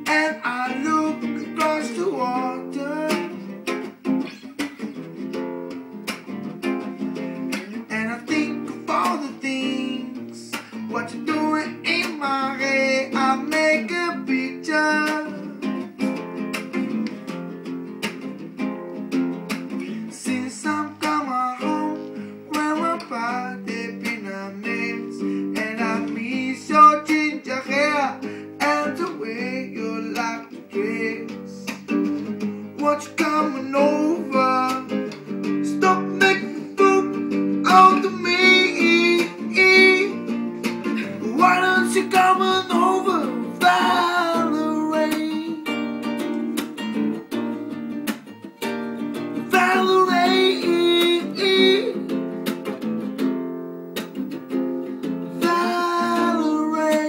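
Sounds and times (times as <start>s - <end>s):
man singing: 0.0s - 3.8s, 7.5s - 16.0s, 19.7s - 46.2s, 49.2s - 52.3s, 54.9s - 57.0s
acoustic guitar strumming: 0.0s - 57.0s.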